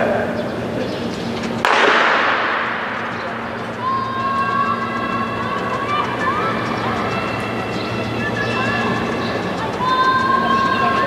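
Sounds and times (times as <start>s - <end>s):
starting gun crack with echo: 1.6s - 3.5s.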